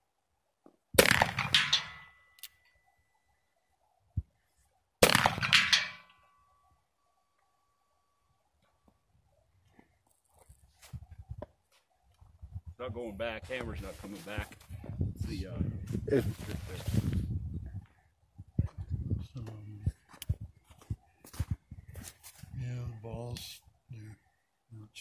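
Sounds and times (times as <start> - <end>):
revolver gunshots with echo: 1.0 - 2.2, 5.0 - 6.0
thin ringing tone: 1.6 - 3.5.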